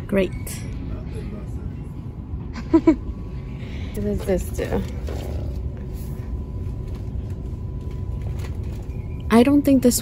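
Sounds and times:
faint steady hum: 0.0s - 10.0s
low shop rumble: 0.0s - 10.0s.

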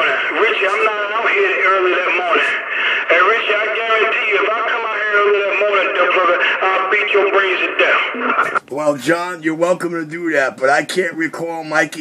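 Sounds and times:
man's voice over radio: 0.0s - 8.6s.

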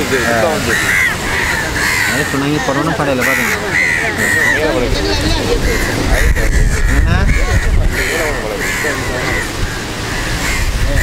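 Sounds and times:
people talking: 0.0s - 9.6s, 10.8s - 11.0s
crows cawing: 0.0s - 11.0s.

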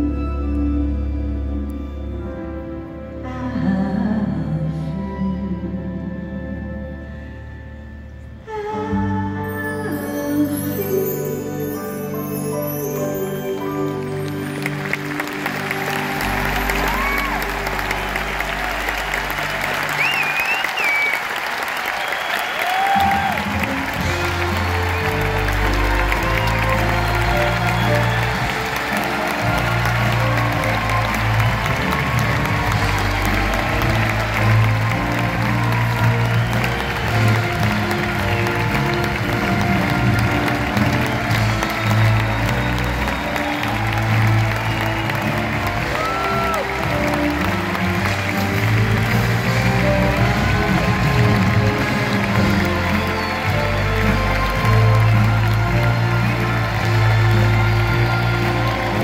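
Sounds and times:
orchestra playing: 0.0s - 59.0s
audience applauding and cheering: 10.7s - 59.0s
whistles from audience: 15.9s - 38.9s, 40.5s - 47.2s.

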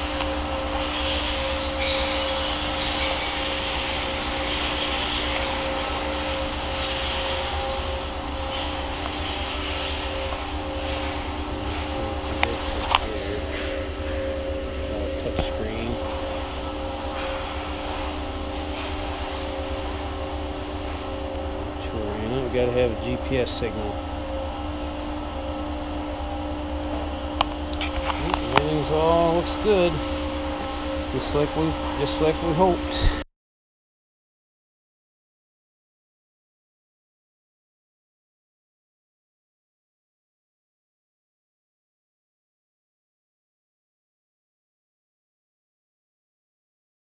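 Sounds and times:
electric whir with low rumble: 0.0s - 33.2s
steady electrical hum: 0.0s - 33.3s.

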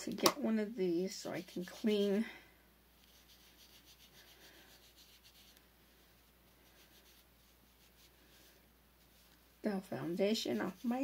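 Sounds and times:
faint rubbing on skin: 0.4s - 2.2s, 3.0s - 11.0s.

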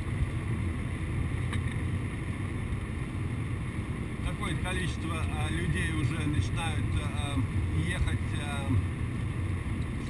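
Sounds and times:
car cabin road rumble: 0.0s - 10.0s.

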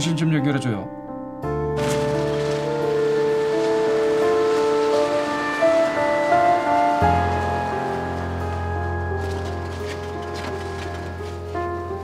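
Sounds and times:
background music of long notes: 0.0s - 12.0s.

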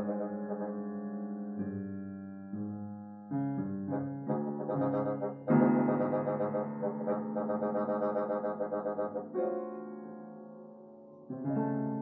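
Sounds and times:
piano: 0.0s - 12.0s
bassoon: 3.9s - 9.5s.

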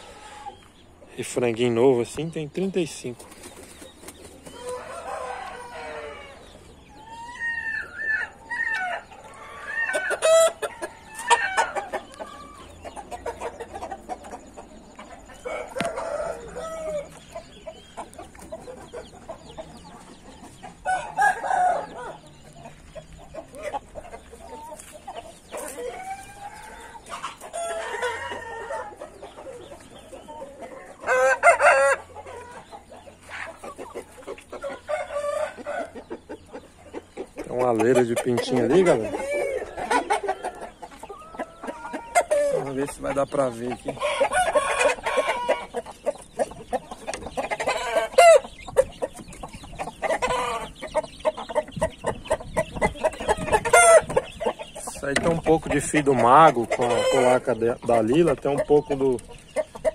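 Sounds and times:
roosters crowing: 0.0s - 0.8s, 4.0s - 59.9s.

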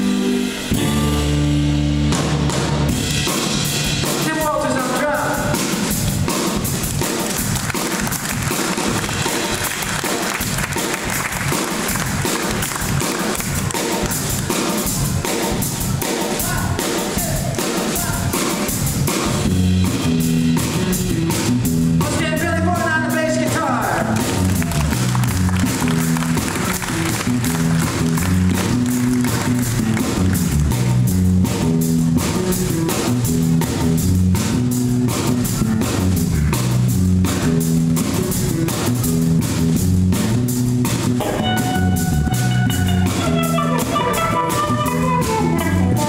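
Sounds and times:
drum kit beat: 0.0s - 46.0s
live blues soul band: 0.0s - 46.0s
electric guitars: 23.4s - 46.0s.

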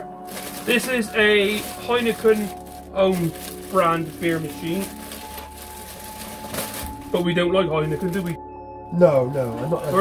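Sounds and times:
plastic wrapping crinkling: 0.0s - 8.4s, 9.1s - 10.0s.

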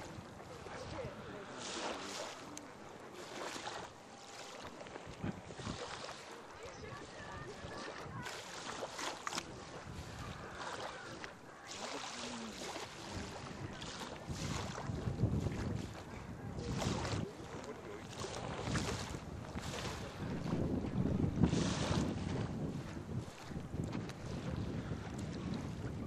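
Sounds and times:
wind buffeting microphone: 0.0s - 2.6s, 3.3s - 26.0s
small waves washing onto sand: 0.0s - 26.0s.

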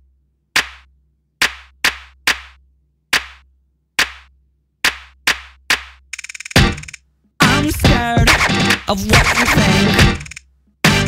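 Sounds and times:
clap-like percussion hits: 0.6s - 7.6s, 8.2s - 11.0s.

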